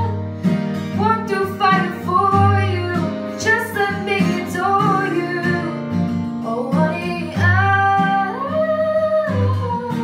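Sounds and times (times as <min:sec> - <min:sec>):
strummed acoustic guitar: 0:00.0 - 0:10.0
woman singing: 0:00.0 - 0:10.0.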